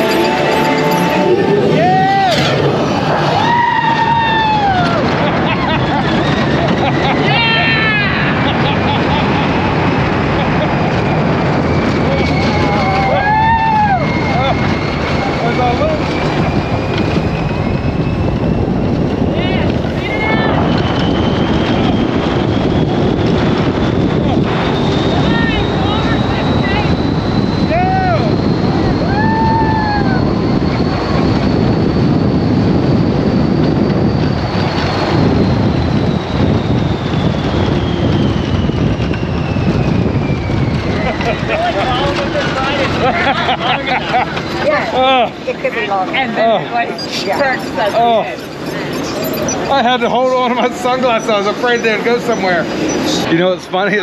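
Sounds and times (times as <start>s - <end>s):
riders crying out: 0.0s - 17.5s, 23.6s - 31.6s, 40.7s - 53.3s
vehicle whine: 0.0s - 54.0s
wind rushing over microphone: 0.0s - 54.0s.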